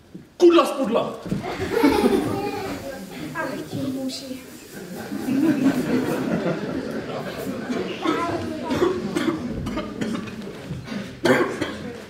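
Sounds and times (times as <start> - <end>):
person coughing: 11.2 - 11.9.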